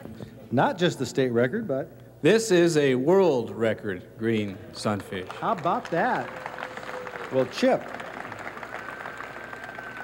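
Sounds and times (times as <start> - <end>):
busy room hum and hiss: 0.0 - 10.0.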